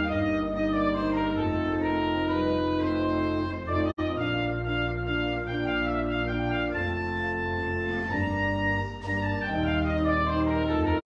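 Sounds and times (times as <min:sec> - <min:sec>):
organ playing held chords: 0:00.0 - 0:11.0.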